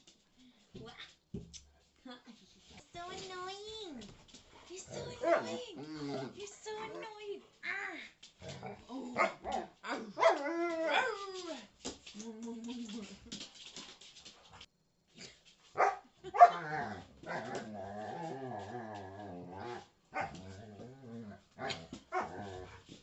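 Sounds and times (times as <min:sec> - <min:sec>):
dog barking: 0:05.2 - 0:05.6, 0:09.2 - 0:09.5, 0:10.2 - 0:10.4, 0:15.8 - 0:16.6, 0:20.1 - 0:20.4, 0:21.7 - 0:22.4.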